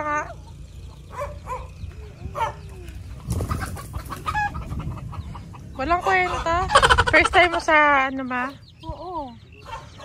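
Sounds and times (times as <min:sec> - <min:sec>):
chickens clucking: 0:00.0 - 0:10.0
chicken squawk: 0:01.1 - 0:07.9.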